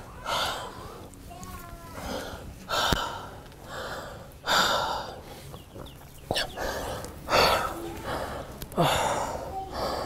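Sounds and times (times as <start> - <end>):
woman gasping heavily: 6.5 - 10.0.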